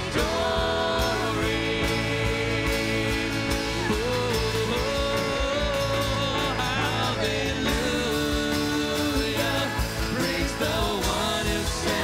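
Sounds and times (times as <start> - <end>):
acoustic guitar: 0.0 - 12.0
drums steady beat: 0.0 - 12.0
man singing: 0.0 - 12.0.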